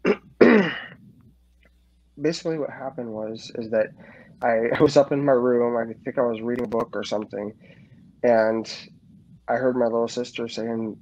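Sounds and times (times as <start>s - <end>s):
man sneezing: 0.0s - 1.0s.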